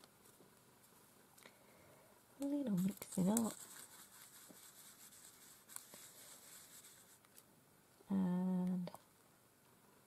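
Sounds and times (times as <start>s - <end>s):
brush scraping on palette: 2.5s - 7.3s
woman humming: 8.1s - 9.0s.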